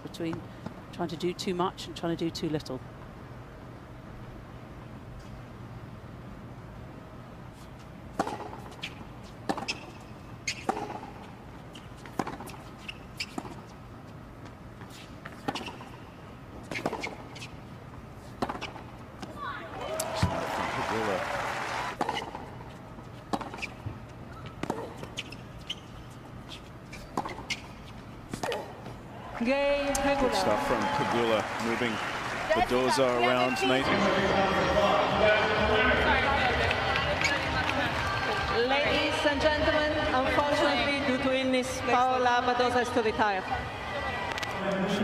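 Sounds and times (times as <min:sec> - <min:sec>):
racket hitting tennis ball: 0:08.1 - 0:11.2, 0:12.0 - 0:12.7, 0:18.3 - 0:19.4, 0:22.0 - 0:22.5, 0:23.3 - 0:24.0, 0:24.6 - 0:25.4, 0:26.9 - 0:29.0
tennis ball bouncing: 0:08.1 - 0:13.7, 0:14.4 - 0:16.0, 0:16.6 - 0:17.5, 0:18.2 - 0:19.4, 0:22.0 - 0:31.1
crowd voices: 0:29.1 - 0:45.0.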